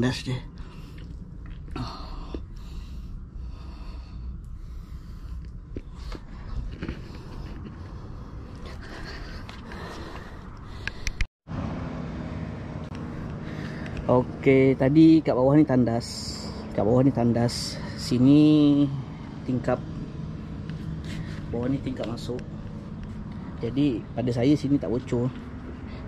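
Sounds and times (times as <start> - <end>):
man breathing: 0.5 - 11.3, 13.0 - 14.1, 20.3 - 21.6, 25.5 - 26.0.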